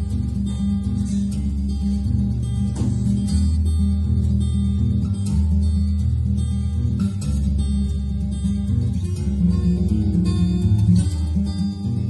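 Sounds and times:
fingerstyle acoustic guitar: 0:00.0 - 0:12.0.

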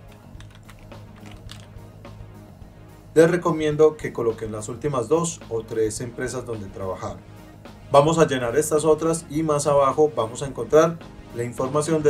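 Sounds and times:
typing on computer keyboard: 0:00.0 - 0:01.7.

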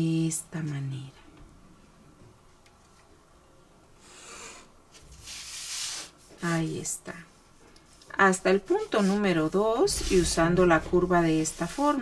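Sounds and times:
plastic ruler swishing across paper: 0:05.0 - 0:06.7, 0:08.0 - 0:12.0.

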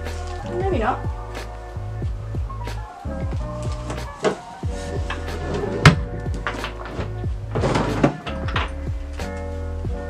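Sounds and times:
background music with beat: 0:00.0 - 0:10.0
wooden drawer scraping open: 0:03.8 - 0:08.5
drawer knocking: 0:05.1 - 0:08.8.

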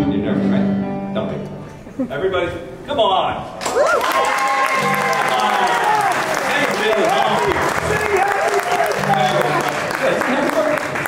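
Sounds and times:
audience applauding: 0:03.6 - 0:11.0.

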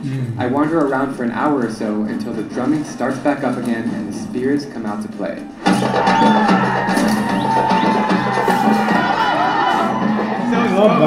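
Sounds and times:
crowd: 0:00.0 - 0:11.0
rapid drum strokes: 0:00.1 - 0:11.0.

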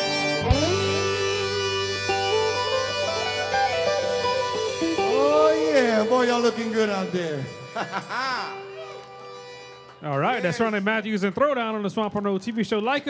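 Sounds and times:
plucked string lead line: 0:00.0 - 0:10.0
live band with accordion: 0:00.0 - 0:10.8.

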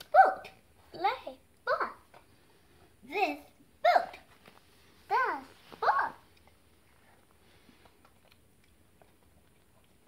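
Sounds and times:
high-pitched vocal yelps: 0:05.8 - 0:06.2.

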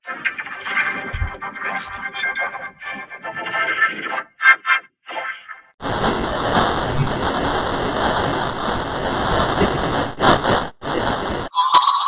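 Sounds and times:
harsh distorted static noise: 0:05.8 - 0:11.5.

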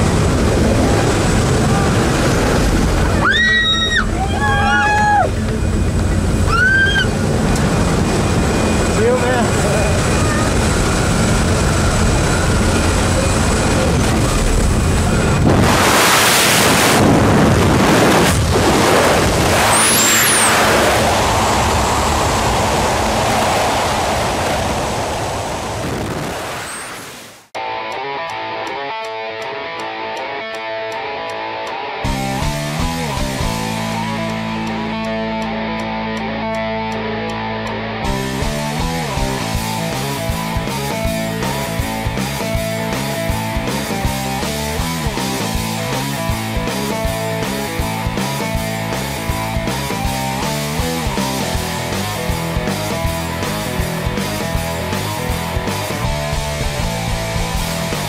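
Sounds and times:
wind noise: 0:00.0 - 0:27.4
plane engine roaring: 0:00.0 - 0:58.0
rock music with electric guitar: 0:27.6 - 0:58.0.

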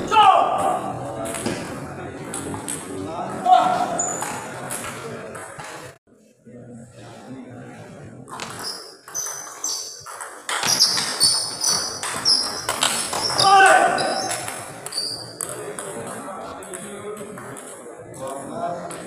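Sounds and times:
shoes squeaking: 0:03.6 - 0:04.6, 0:08.3 - 0:15.5.

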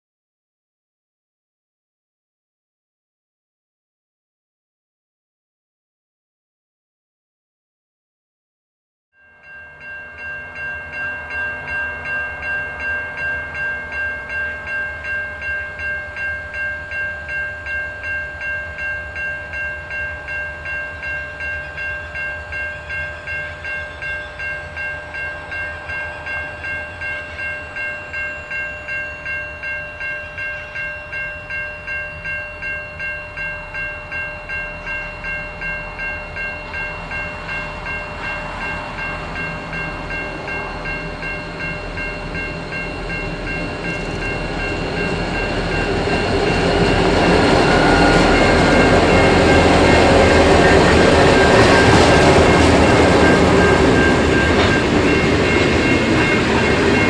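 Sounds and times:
level crossing bell ringing: 0:09.2 - 0:57.0
diesel train rumble: 0:32.9 - 0:57.0.

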